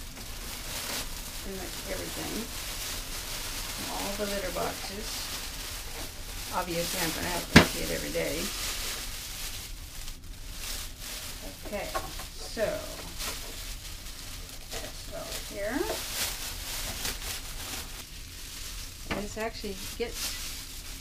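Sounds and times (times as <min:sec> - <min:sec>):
plastic bag crinkling: 0:00.0 - 0:21.0
litter shifting in a bag: 0:14.6 - 0:17.5.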